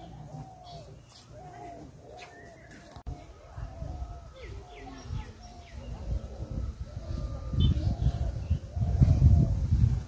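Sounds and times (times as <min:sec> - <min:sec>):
birds chirping: 0:00.0 - 0:09.8
low rumble on microphone: 0:02.9 - 0:10.0.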